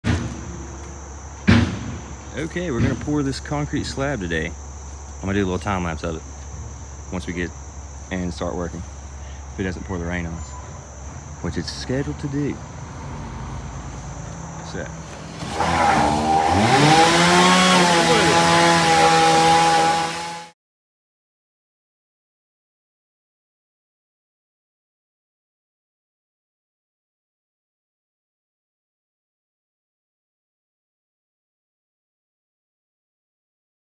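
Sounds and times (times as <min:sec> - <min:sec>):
sudden thump: 0:00.0 - 0:03.1
skid steer engine revving: 0:00.0 - 0:06.4, 0:11.8 - 0:20.5
crickets chirping: 0:00.0 - 0:19.9
insects droning: 0:00.0 - 0:20.4.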